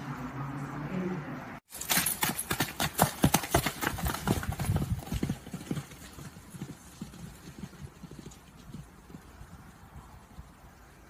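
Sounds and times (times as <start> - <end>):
hoofbeats on muddy ground: 1.7 - 10.6.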